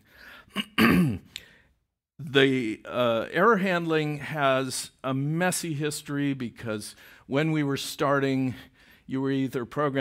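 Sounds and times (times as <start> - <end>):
man clearing his throat: 0.5 - 1.3.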